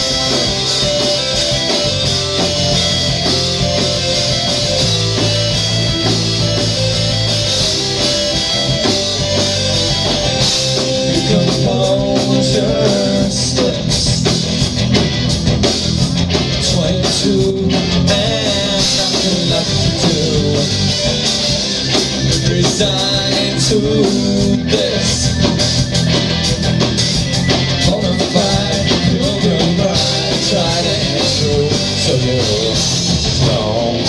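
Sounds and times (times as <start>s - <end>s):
live rock band playing: 0.0s - 34.0s.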